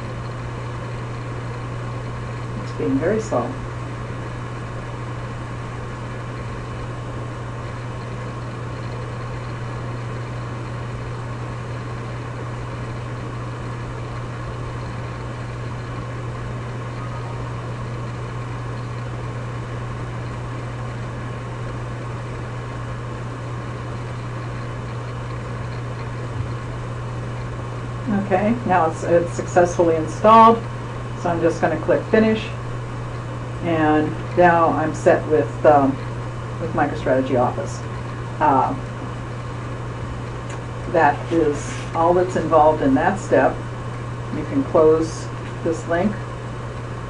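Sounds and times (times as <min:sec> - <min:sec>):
constant hiss: 0:00.0 - 0:47.0
low hum: 0:00.0 - 0:47.0.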